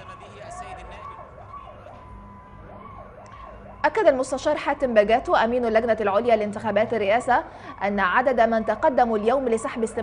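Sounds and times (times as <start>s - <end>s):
faint siren wailing: 0.0s - 10.0s.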